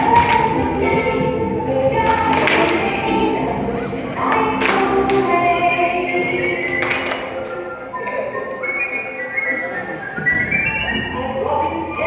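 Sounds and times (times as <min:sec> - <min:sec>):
recorded dance music: 0:00.0 - 0:09.0.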